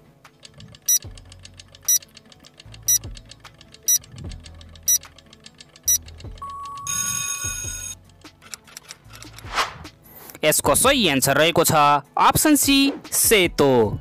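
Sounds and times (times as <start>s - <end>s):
fast timer ticking: 0.4s - 8.2s
alarm clock ringing: 5.9s - 8.0s.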